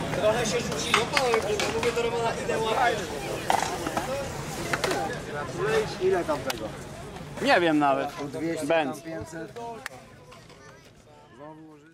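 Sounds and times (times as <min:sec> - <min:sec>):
people talking indistinctly: 0:00.0 - 0:11.9.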